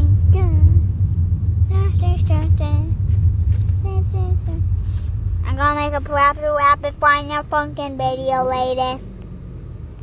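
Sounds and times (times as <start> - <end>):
car rumble inside cabin: 0.0 - 10.0.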